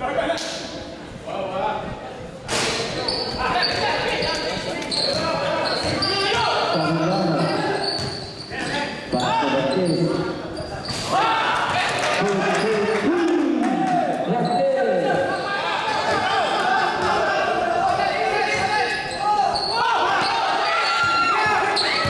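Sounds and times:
basketball bouncing on court: 5.1 - 6.6
people shouting: 11.1 - 12.0, 15.4 - 22.0.

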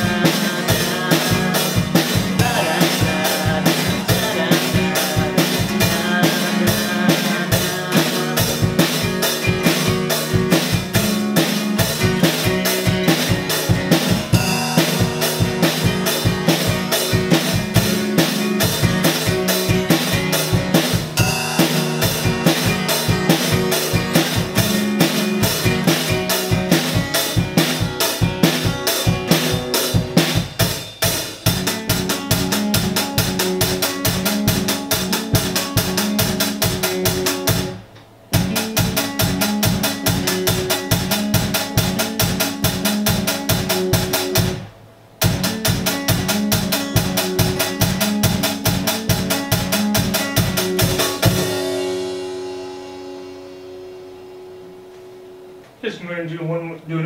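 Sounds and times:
drum kit beat: 0.0 - 55.9
acoustic guitar strummed: 0.0 - 56.5.

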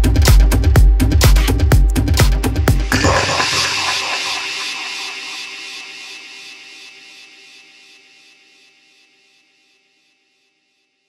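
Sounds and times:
synthesized noise wash: 2.8 - 6.8.

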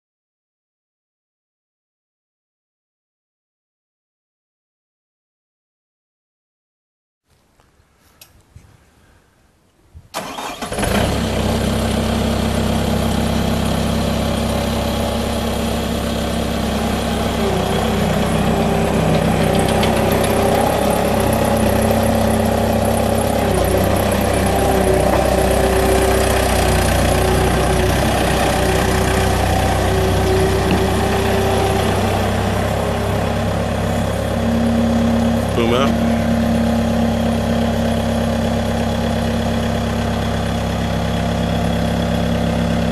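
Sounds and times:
diesel engine cranking and running: 10.2 - 42.9
steady whine: 34.4 - 37.2.

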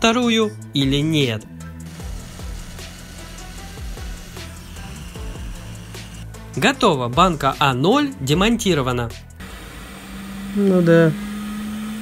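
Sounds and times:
background music: 0.0 - 9.7
hot-air gun hissing: 1.9 - 6.3.

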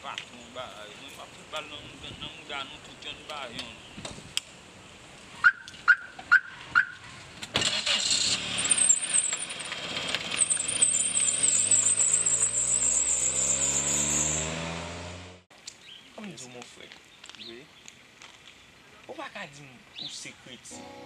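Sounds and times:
car engine revving: 7.6 - 15.5.

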